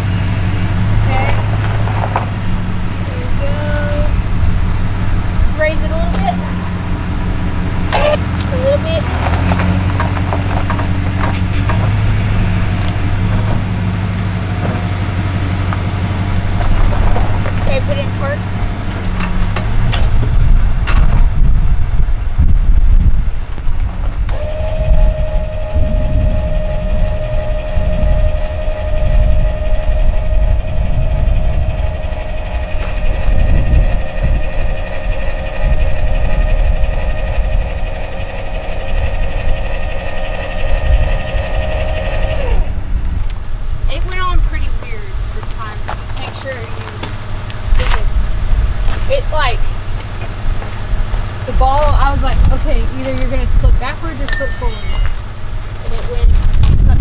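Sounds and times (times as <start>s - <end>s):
low rumble: 0.0s - 57.0s
electric motor whining: 24.1s - 43.3s.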